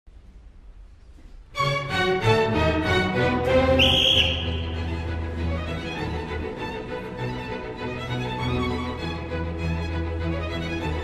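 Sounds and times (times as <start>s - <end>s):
string orchestra playing a galop: 1.6s - 11.0s.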